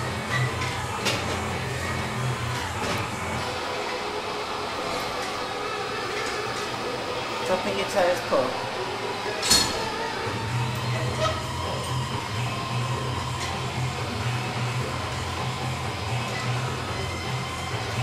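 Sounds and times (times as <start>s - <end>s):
faint background music: 0.0s - 18.0s.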